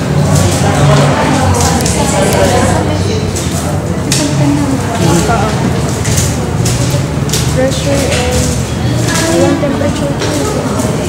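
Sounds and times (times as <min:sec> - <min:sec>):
crowd of young people chattering: 0:00.0 - 0:11.0.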